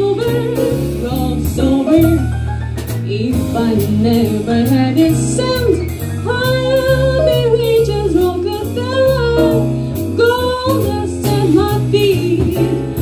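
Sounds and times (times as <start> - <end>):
drum kit with cymbal strokes: 0.0 - 13.0
electric bass walking line: 0.0 - 13.0
woman singing jazz: 0.0 - 13.0.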